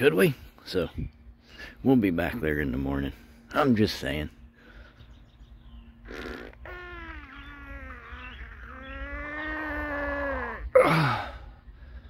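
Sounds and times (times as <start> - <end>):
man groaning yawn: 9.8 - 11.6.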